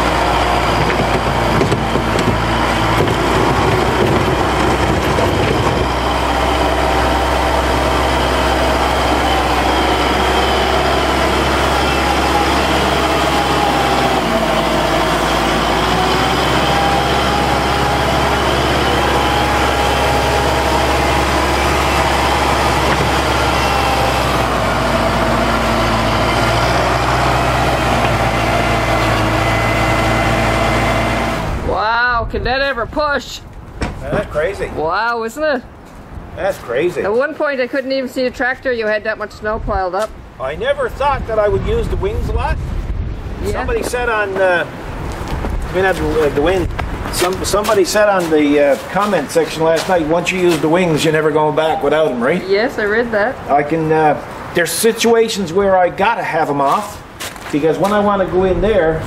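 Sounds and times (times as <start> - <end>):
tractor diesel engine under load: 0.0 - 34.9, 39.6 - 59.0.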